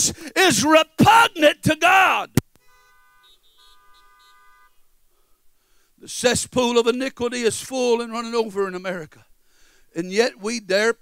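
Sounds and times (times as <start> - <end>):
faint car horn held: 2.5 - 4.9.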